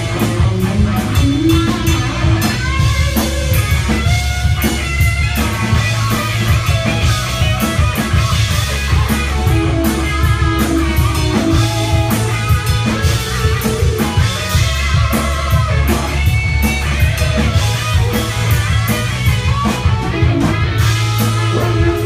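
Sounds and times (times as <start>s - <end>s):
bass guitar: 0.0s - 22.0s
drum kit beating a rhythm: 0.0s - 22.0s
electric guitars: 0.0s - 22.0s.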